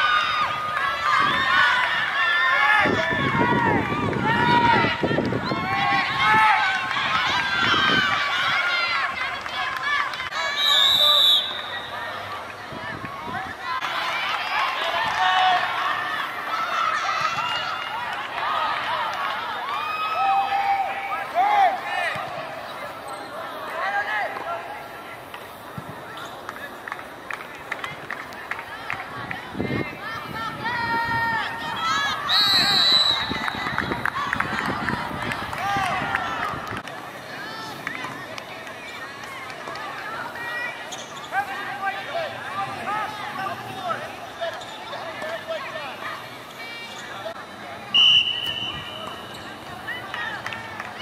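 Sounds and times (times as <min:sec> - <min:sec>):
players and onlookers shouting: 0:00.0 - 0:25.6, 0:28.6 - 0:51.0.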